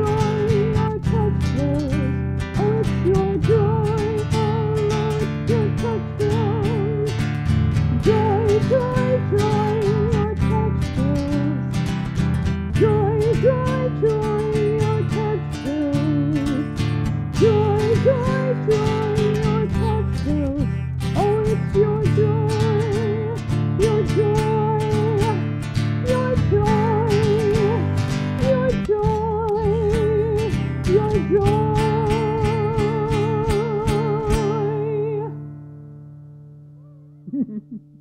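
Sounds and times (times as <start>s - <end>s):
woman singing with vibrato: 0.0s - 11.9s, 12.7s - 35.4s
strummed acoustic guitar: 0.0s - 38.0s.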